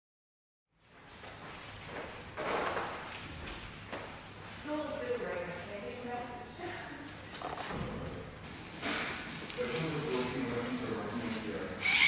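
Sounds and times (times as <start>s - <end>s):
wheelchair rolling on hard floor: 1.3s - 4.1s.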